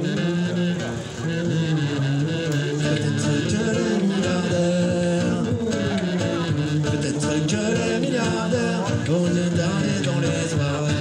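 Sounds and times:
man singing through microphone: 0.0s - 11.0s.

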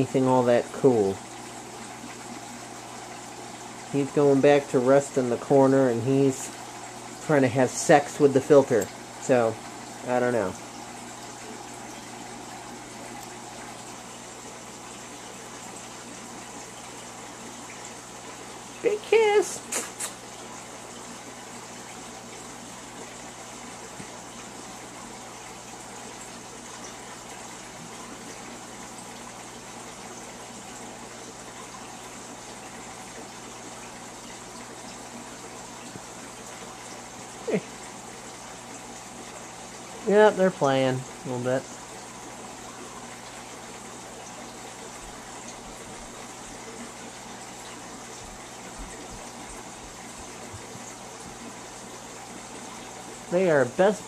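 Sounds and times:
aquarium filter water rushing: 0.0s - 54.0s.

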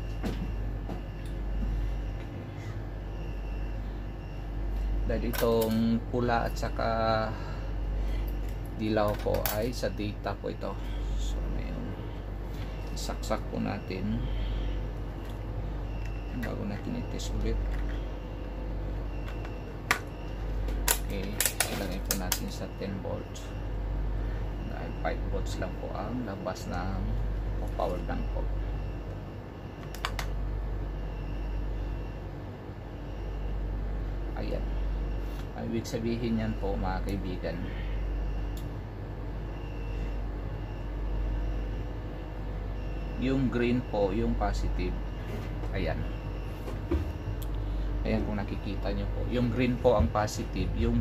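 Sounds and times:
low background rumble: 0.0s - 46.5s
steady low hum: 0.0s - 51.0s.

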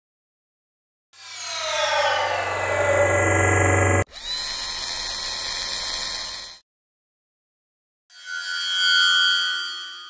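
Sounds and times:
whooshing sweep of falling tones: 1.2s - 4.1s
synthetic whine: 1.2s - 6.6s.

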